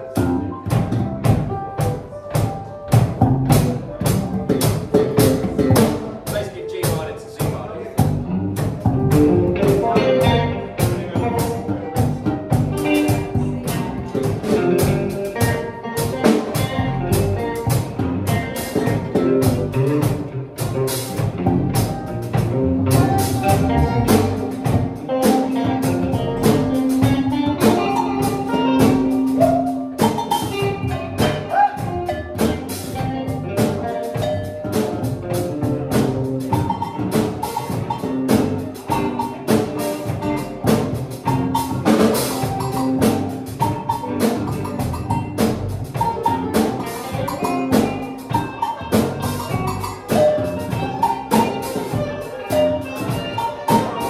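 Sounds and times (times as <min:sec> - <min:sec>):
electric guitar: 0:00.0 - 0:06.3, 0:08.0 - 0:54.0
bass: 0:00.0 - 0:54.0
drum kit beat: 0:00.0 - 0:54.0
keyboard: 0:00.0 - 0:54.0.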